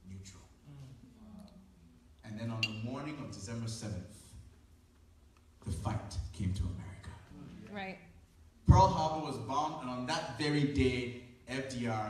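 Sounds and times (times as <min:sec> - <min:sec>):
faint man speaking: 0:05.7 - 0:07.8.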